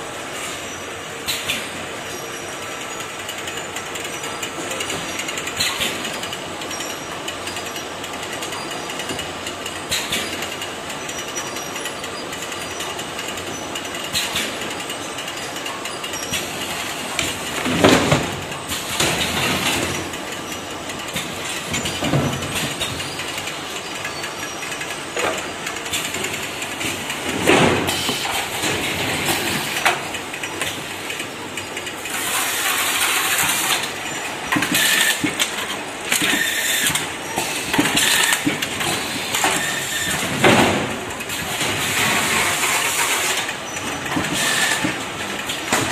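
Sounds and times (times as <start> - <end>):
steady machine noise: 0.0 - 45.9.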